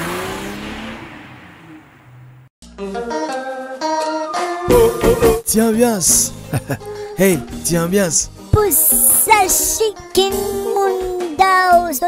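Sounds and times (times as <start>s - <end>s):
car engine revving and accelerating: 0.0s - 2.5s.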